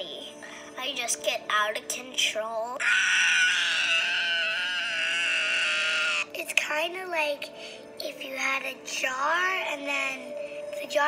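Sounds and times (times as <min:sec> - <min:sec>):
child screaming through small speaker: 0:02.8 - 0:06.3.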